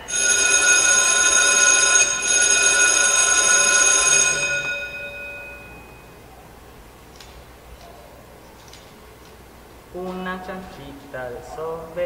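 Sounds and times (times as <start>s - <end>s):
bell ringing: 0.0s - 6.3s.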